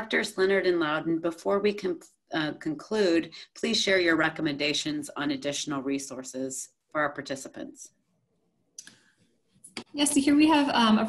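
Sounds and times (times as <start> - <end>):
woman speaking: 0.0 - 7.9, 9.7 - 11.0.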